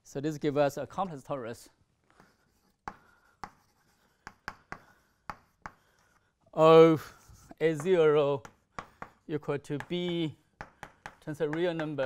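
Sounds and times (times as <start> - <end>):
chalk tapping on blackboard: 2.2 - 6.2, 7.3 - 12.0.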